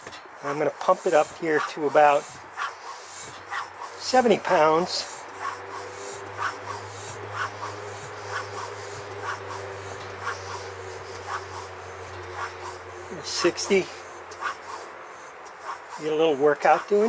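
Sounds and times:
hand air pump strokes: 0.0 - 17.0.

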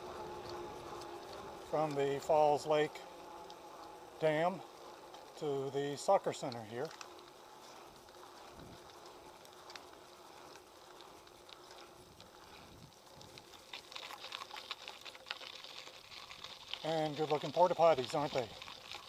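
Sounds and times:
bike tyres rolling on pavement: 0.0 - 19.0
tyres crackling on gravel: 0.0 - 19.0.

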